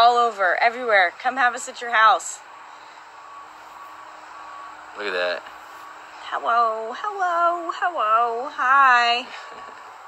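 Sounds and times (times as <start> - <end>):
faint high hum: 0.0 - 10.0.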